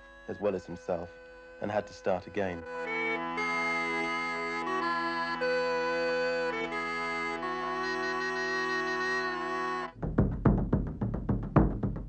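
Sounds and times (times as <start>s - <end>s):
uilleann pipes slow tune: 0.0s - 10.0s
drum hits: 10.0s - 12.0s.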